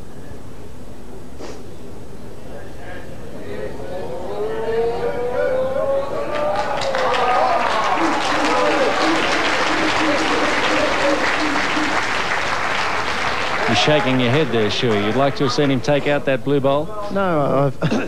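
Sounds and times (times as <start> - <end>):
spectators calling out: 4.2 - 12.4
crowd applause: 5.5 - 16.4.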